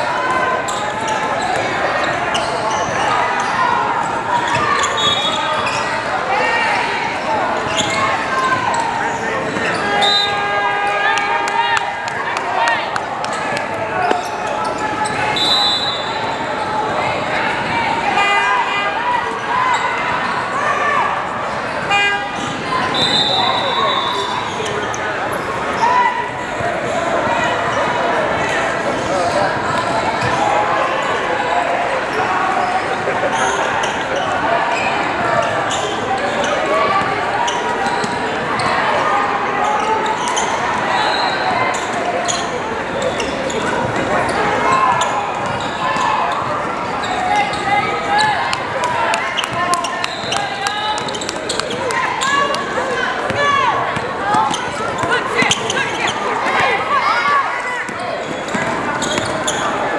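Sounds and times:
echoing voices of crowd: 0.0 - 59.9.

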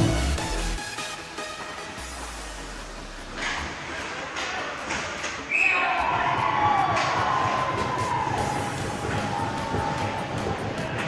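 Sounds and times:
sticks and puck hitting boards: 3.4 - 5.5, 6.6 - 11.0.

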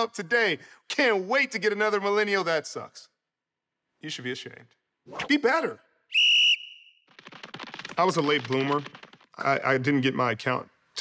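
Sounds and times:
high whistle tone: 6.1 - 7.0
fast run of clicks: 7.0 - 9.6.

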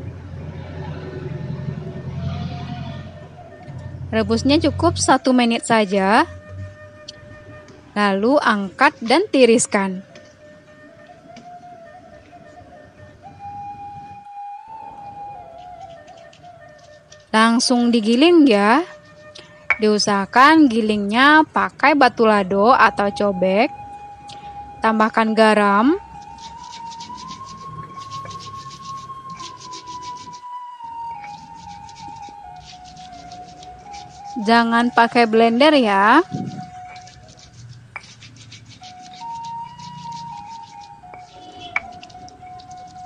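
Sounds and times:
soft flute-like melody: 0.1 - 43.0
stone pestle grinding on stone: 15.5 - 17.4, 18.9 - 20.1, 26.1 - 30.5, 31.1 - 35.2, 35.8 - 43.0
steady high tone: 22.6 - 37.4.

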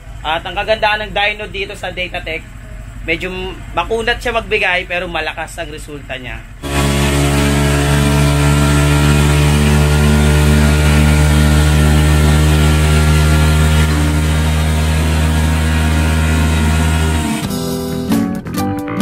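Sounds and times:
scooter engine revving high: 6.5 - 18.1.

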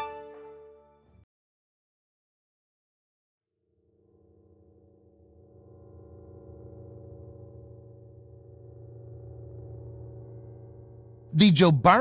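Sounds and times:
low electronic drone: 3.7 - 12.0.

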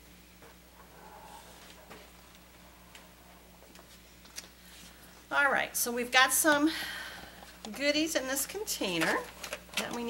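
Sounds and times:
low hum: 0.0 - 5.3.

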